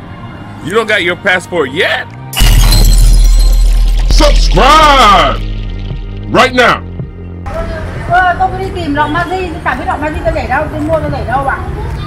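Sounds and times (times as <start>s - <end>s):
glass shattering sound effect: 2.4s - 6.8s
heavy bass hit: 2.4s - 7.4s.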